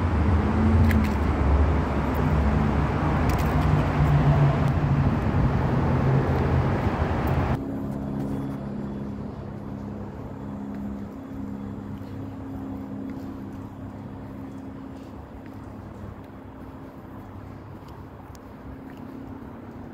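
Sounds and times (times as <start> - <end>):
road traffic passing: 0.0 - 19.9.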